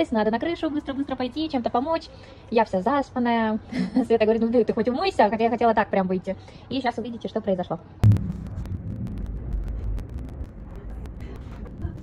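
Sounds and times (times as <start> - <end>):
sharp thump: 8.0 - 11.0.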